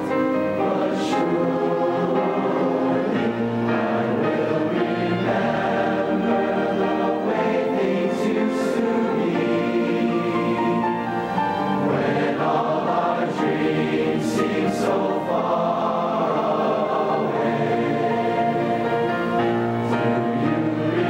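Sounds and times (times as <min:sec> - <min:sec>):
mixed choir singing in harmony: 0:00.0 - 0:21.0.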